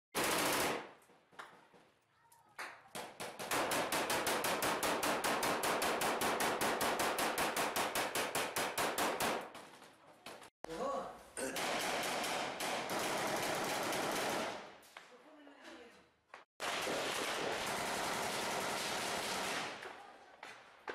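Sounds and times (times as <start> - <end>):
automatic rifle fire: 11.6 - 14.6, 16.6 - 19.8.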